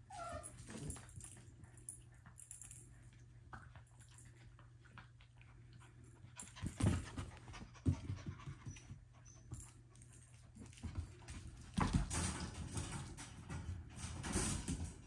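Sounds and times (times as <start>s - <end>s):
puppies scuffling and scrambling: 0.0s - 15.0s
puppies panting: 1.8s - 11.2s.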